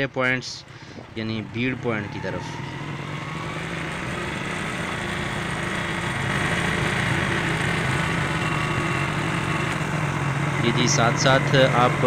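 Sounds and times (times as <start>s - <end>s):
rough road noise: 0.0s - 12.0s
vehicle engine running: 0.0s - 12.0s.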